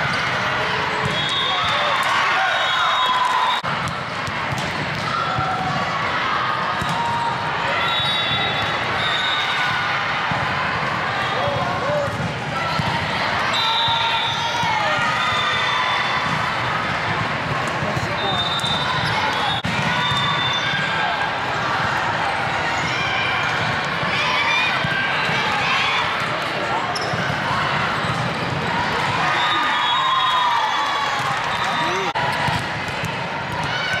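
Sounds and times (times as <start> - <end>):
volleyball being hit and bouncing: 3.6 - 6.0, 31.2 - 34.0
voices calling and chattering: 7.4 - 34.0
shoes squeaking on court: 26.9 - 27.4.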